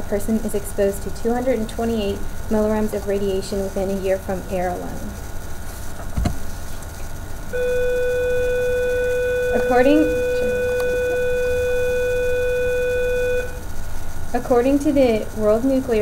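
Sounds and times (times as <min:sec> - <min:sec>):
dull thump: 0:06.1 - 0:06.4
steady beep tone: 0:07.5 - 0:13.6.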